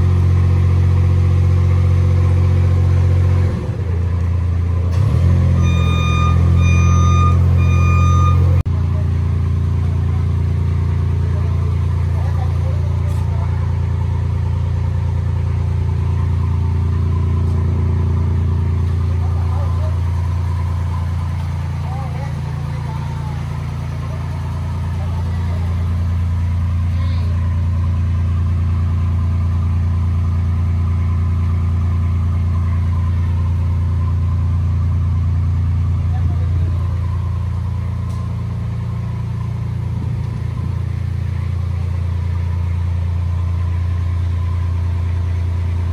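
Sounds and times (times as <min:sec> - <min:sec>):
low engine rumble: 0:00.0 - 0:45.9.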